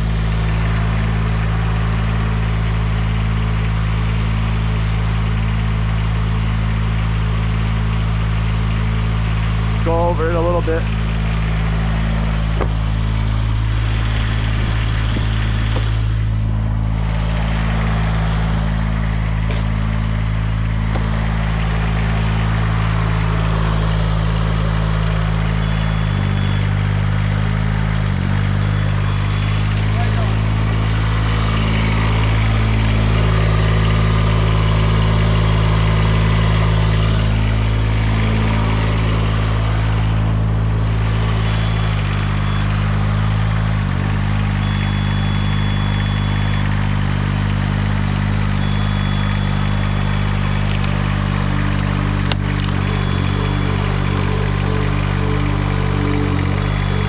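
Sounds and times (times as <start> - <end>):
tracked lift engine running: 0.0 - 57.0
thin high tone: 48.4 - 57.0.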